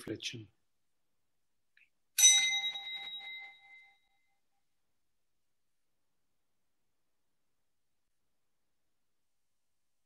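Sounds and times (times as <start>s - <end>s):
small bell ringing: 2.2s - 4.6s.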